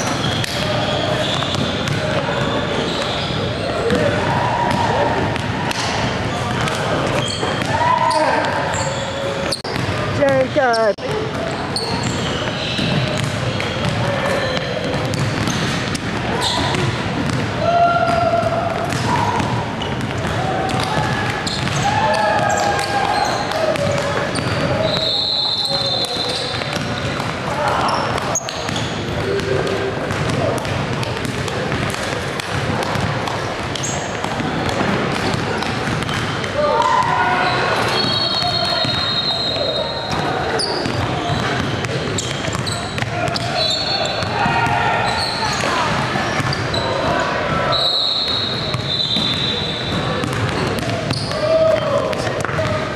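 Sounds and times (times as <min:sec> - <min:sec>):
sneakers squeaking on court: 0:00.0 - 0:04.8, 0:05.4 - 0:17.4, 0:18.0 - 0:36.5, 0:37.4 - 0:52.8
basketballs bouncing on court: 0:00.0 - 0:52.9
many voices chattering: 0:00.0 - 0:52.9.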